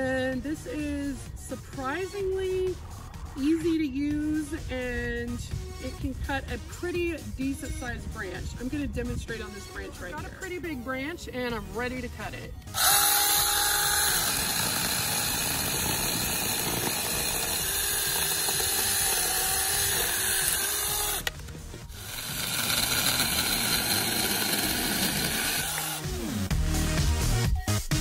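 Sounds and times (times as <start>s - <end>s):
electric chainsaw cutting branch: 12.6s - 26.5s
rhythmic electronic music: 25.8s - 28.0s.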